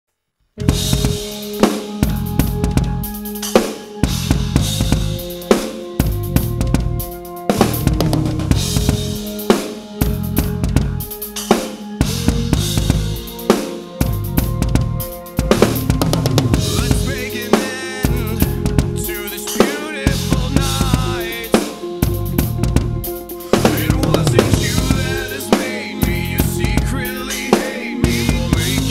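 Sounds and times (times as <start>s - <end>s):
backing track bass and synth: 0.6s - 3.4s, 4.0s - 19.4s, 20.1s - 28.9s
rock drum kit playing: 0.6s - 28.9s.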